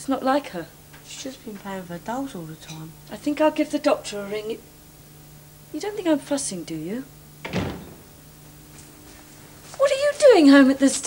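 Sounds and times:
door shutting thud: 7.4s - 8.3s.

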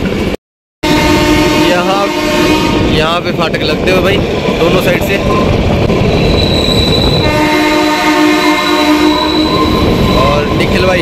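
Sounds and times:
train coaches rolling on track: 0.0s - 11.0s
train horn blast: 0.8s - 3.0s, 7.2s - 9.9s
thin high squeal: 6.2s - 7.3s, 8.8s - 10.6s.

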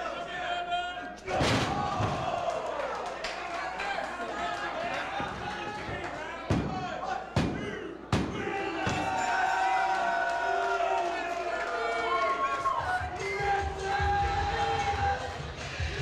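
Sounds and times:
crowd shouting: 0.0s - 15.5s.

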